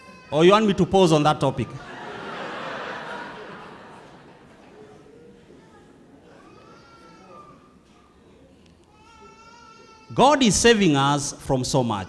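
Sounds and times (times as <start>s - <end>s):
faint high-pitched cry: 5.3s - 10.2s.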